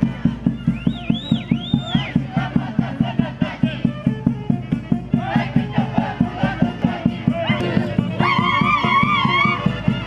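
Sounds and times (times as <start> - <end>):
folk dance music: 0.0 - 10.0
people shouting: 1.4 - 3.8, 5.2 - 9.7.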